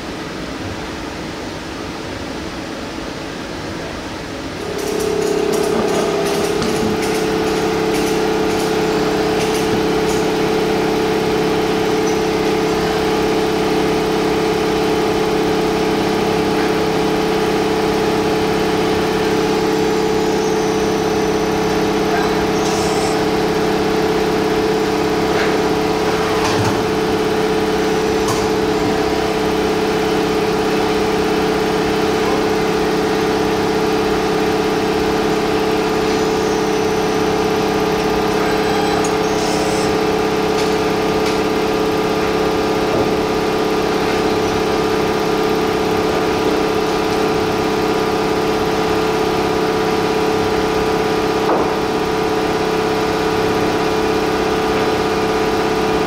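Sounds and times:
lathe humming: 4.5 - 56.0
tool turret clicks: 4.7 - 10.3.

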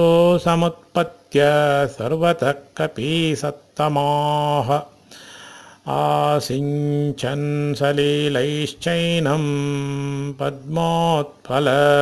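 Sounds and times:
man chanting: 0.0 - 4.9, 5.8 - 12.0.

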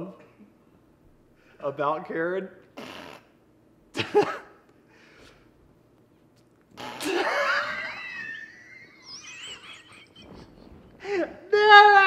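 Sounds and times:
person squealing: 6.8 - 9.9.

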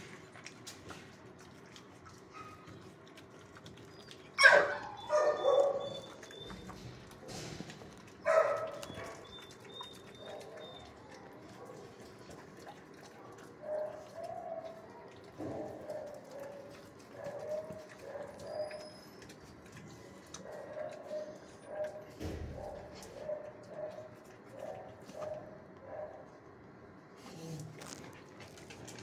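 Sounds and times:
dog barking: 4.4 - 6.2, 8.2 - 9.3, 13.1 - 18.8, 20.4 - 26.3.

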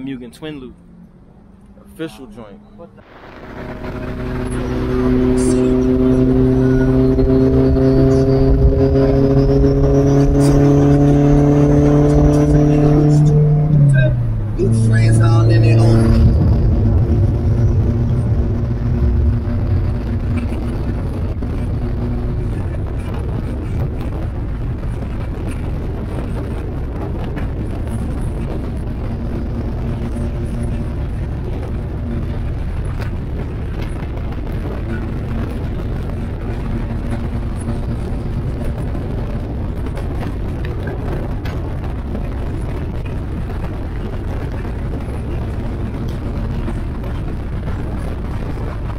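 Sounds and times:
car engine accelerating: 0.0 - 48.9
road and wind noise: 0.0 - 48.9.

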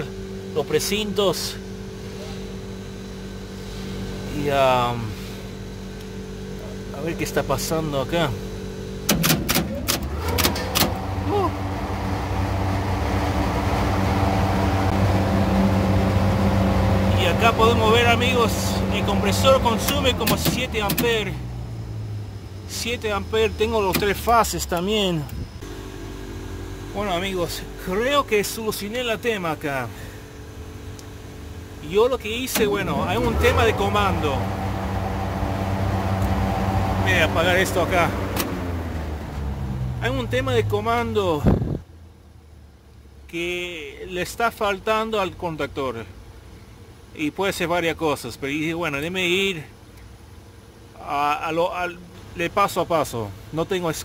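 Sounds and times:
refrigeration compressor humming: 0.0 - 54.0.

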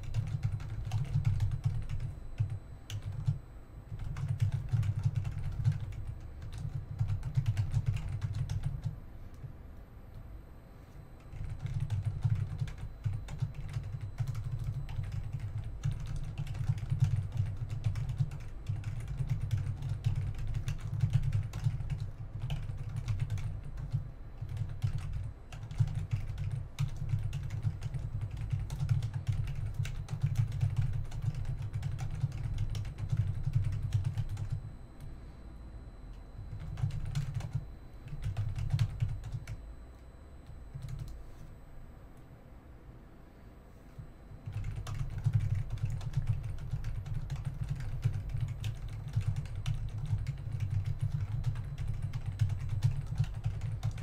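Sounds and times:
computer keyboard typing: 0.0 - 9.5, 11.2 - 35.1, 36.1 - 39.6, 40.5 - 41.2, 44.4 - 54.0.

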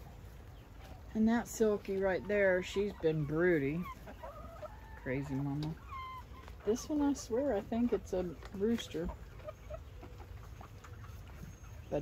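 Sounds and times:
chickens clucking softly: 0.0 - 12.0.

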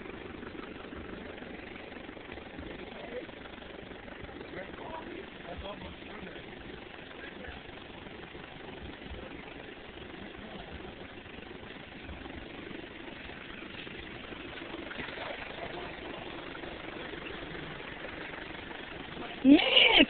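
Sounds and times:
engine-like rumble: 0.0 - 20.0.

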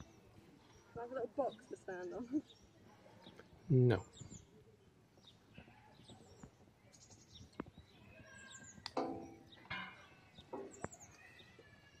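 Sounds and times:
birds chirping and calling: 0.0 - 12.0.

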